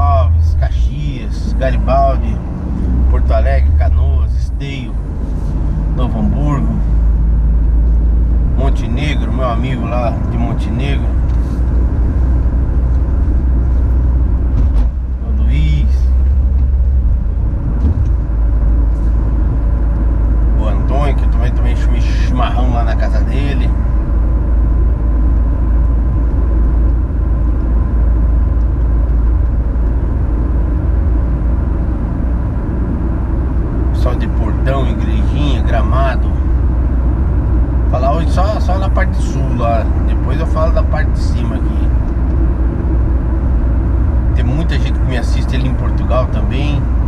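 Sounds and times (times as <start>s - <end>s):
engine and tyre rumble in cabin: 0.0s - 47.0s.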